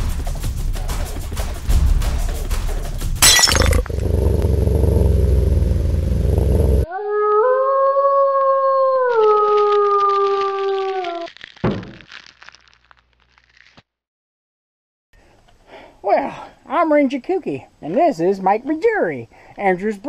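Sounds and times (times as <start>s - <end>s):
sharp crash: 3.2s - 4.0s
wolf howl: 6.8s - 11.3s.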